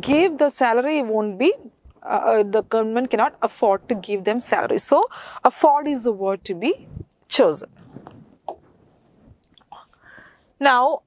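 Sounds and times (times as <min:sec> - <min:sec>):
woman breathing quietly: 0:05.1 - 0:05.4, 0:09.2 - 0:10.6.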